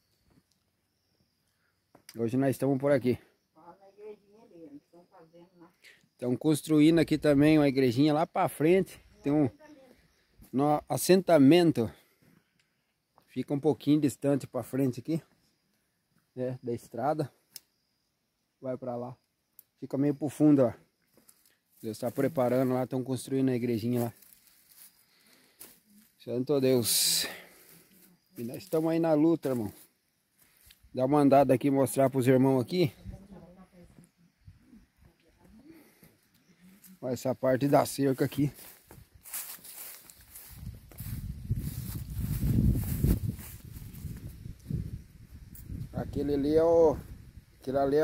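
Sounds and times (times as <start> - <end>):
man speaking: 6.2 - 9.6, 10.5 - 12.0, 13.3 - 15.3, 21.8 - 24.2, 26.2 - 27.6, 28.4 - 29.8, 30.9 - 33.0, 37.0 - 38.6, 46.0 - 48.0
footsteps through grass: 21.2 - 22.9, 23.6 - 26.2, 26.9 - 30.9, 36.6 - 45.8.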